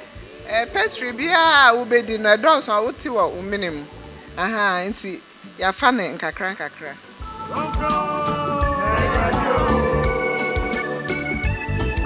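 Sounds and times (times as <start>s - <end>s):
music: 0.0s - 5.0s, 5.8s - 12.0s
person singing: 7.2s - 11.4s.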